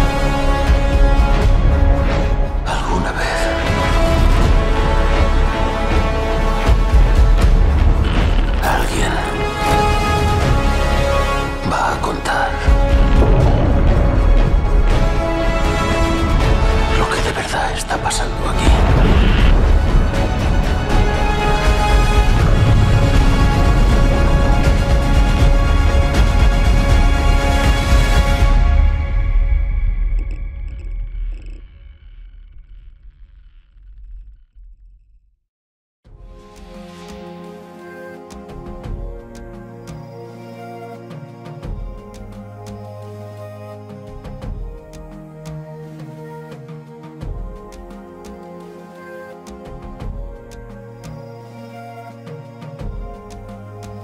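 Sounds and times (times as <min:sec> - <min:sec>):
music: 0:00.0 - 0:31.7, 0:36.0 - 0:54.0
deep low rumble: 0:12.7 - 0:25.9, 0:28.8 - 0:35.5
deep steady rumble: 0:28.8 - 0:35.4
metal machinery creaking: 0:30.1 - 0:35.2.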